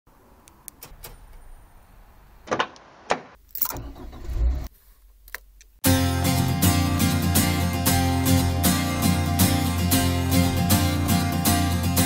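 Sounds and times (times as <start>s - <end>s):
music: 5.8s - 12.0s.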